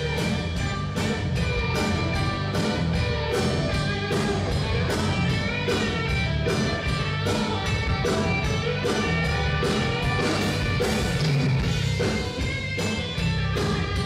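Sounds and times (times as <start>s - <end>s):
rock band playing: 0.0s - 14.0s.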